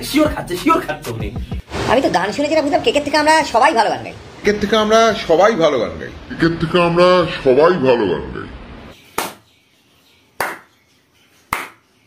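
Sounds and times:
person clapping: 10.4 - 10.7, 11.5 - 11.8.

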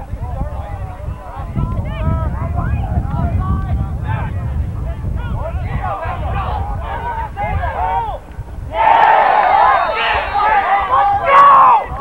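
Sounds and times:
wind rumbling on microphone: 0.0 - 12.0
crowd yelling and cheering: 5.4 - 12.0.

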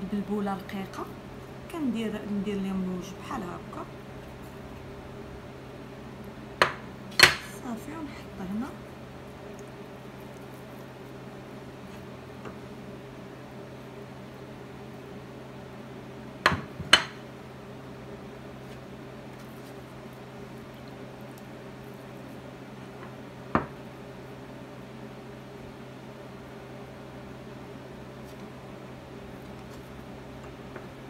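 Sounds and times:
low kitchen hum: 0.0 - 31.0.

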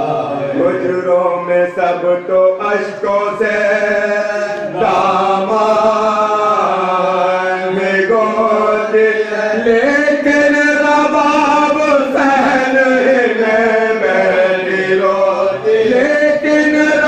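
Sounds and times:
men chanting unaccompanied: 0.0 - 17.0.

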